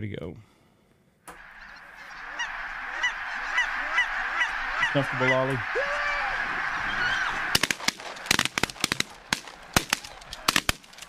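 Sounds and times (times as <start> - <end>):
flock of geese honking: 1.3 - 10.7.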